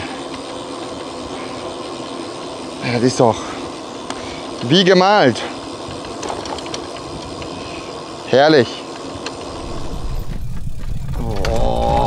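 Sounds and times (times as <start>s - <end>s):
wind buffeting microphone: 9.5s - 12.0s
tyre rumble: 9.6s - 12.0s.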